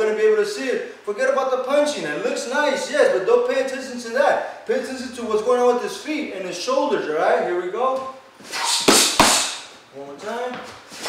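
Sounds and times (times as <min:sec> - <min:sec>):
boxing gloves hitting mitts: 0:08.8 - 0:09.7.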